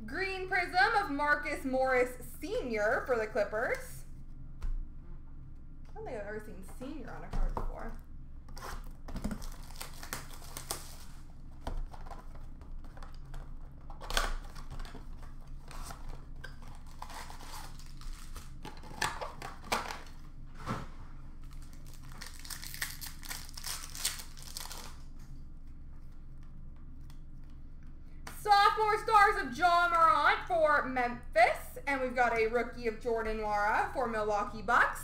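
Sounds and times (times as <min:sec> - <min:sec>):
card pack wrappers crinkling and tearing: 0:08.6 - 0:20.2, 0:21.4 - 0:25.2.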